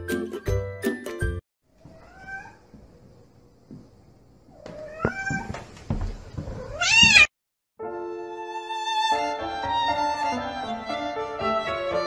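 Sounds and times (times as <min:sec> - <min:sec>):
cat meowing: 0:01.9 - 0:02.6, 0:04.6 - 0:05.5, 0:06.6 - 0:07.3.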